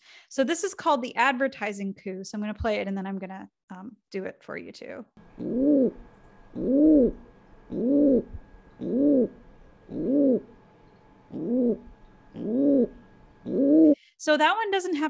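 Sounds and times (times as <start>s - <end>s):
pigeon cooing: 5.2s - 10.6s, 11.3s - 14.0s.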